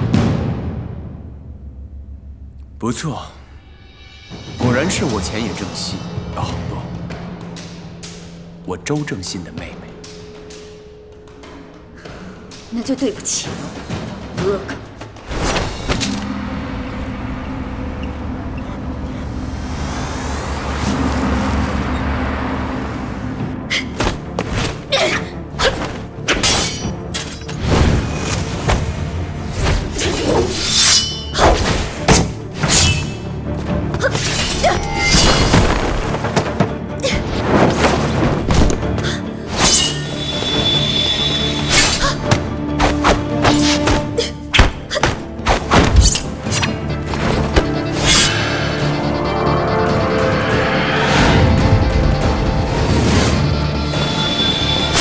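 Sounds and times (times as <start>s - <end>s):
dramatic background music: 0.0s - 55.0s
punches and hits: 41.8s - 46.6s.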